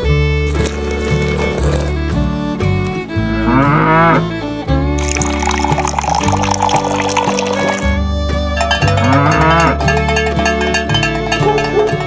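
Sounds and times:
background music: 0.0 - 12.0
cow mooing: 3.4 - 4.3, 8.9 - 9.8.

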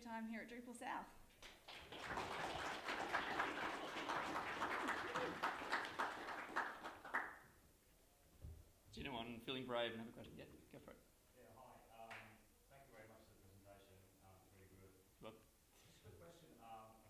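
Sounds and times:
audience applauding: 1.4 - 7.5.

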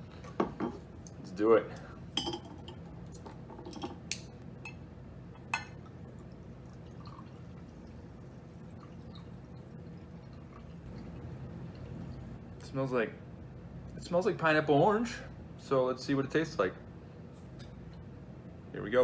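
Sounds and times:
soda pouring into a glass: 5.8 - 11.3.

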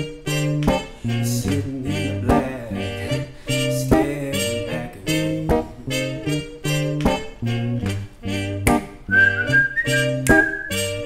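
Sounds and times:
strummed guitar chords: 0.0 - 11.0
whistled melody: 8.3 - 11.0.

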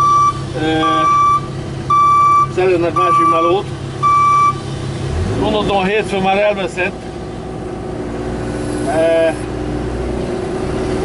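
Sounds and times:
reversing alarm beeping: 0.0 - 4.6
engine humming: 0.0 - 11.0.

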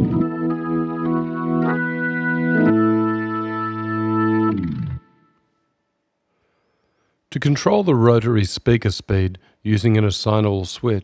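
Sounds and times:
synthesizer organ chords: 0.0 - 6.2.

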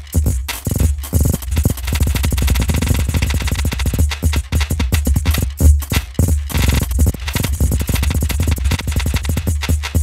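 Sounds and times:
clattery retriggered sample fragments: 0.0 - 10.0
low synth thumps: 0.0 - 10.0.

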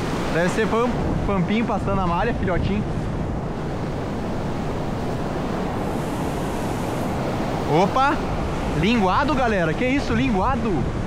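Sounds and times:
surf washing in: 0.0 - 11.0.

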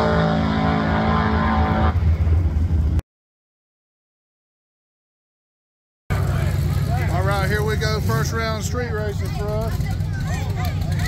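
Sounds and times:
car engine idling: 6.1 - 11.0.

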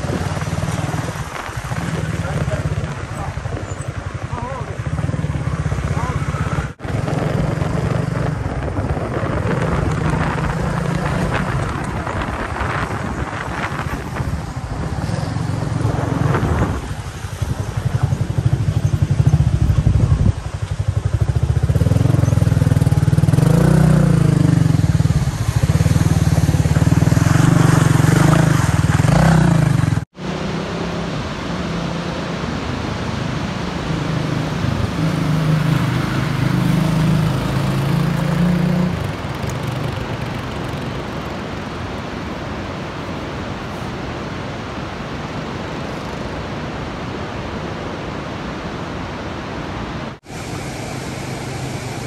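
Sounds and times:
motorcycle engine on gravel road: 0.0 - 47.7.

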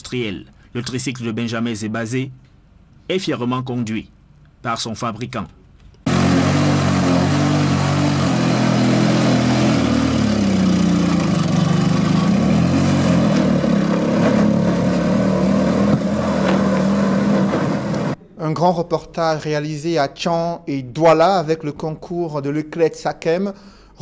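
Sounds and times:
tricycle engine running: 6.1 - 18.2.

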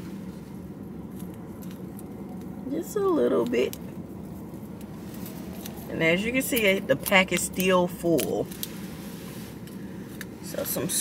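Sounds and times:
low steady car cabin hum: 0.0 - 11.0.

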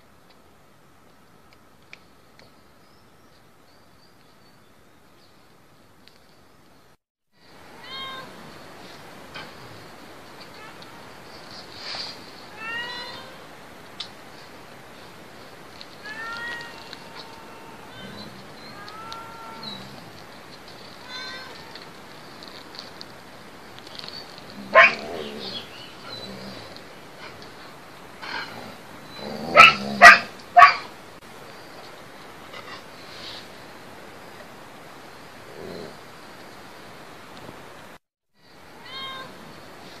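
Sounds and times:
animal cries: 16.0 - 20.0, 38.8 - 39.4.

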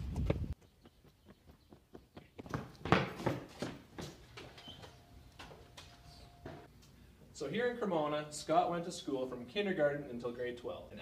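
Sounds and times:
wind noise on microphone: 0.0 - 0.6
running footsteps on hard ground: 0.0 - 4.8.

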